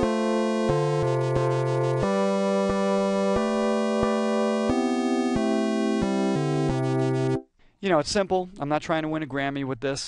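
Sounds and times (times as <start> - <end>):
chiptune synthesizer music: 0.0 - 7.4.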